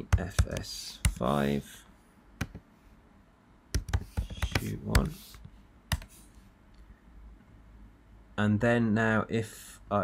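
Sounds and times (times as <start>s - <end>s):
keyboard key presses: 3.7s - 6.1s.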